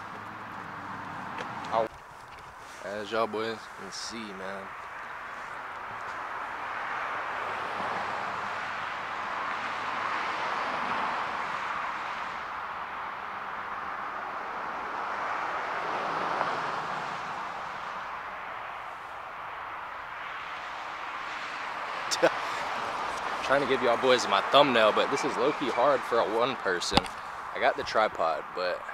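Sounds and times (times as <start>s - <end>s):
tyres hissing on road: 2.6s - 5.8s, 20.4s - 28.7s.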